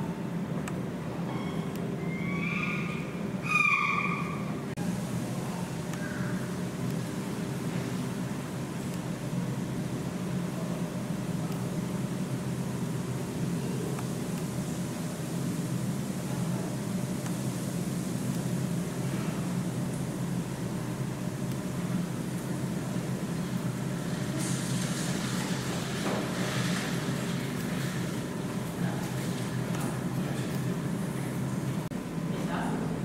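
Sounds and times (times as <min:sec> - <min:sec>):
low machine hum: 0:00.0 - 0:33.0.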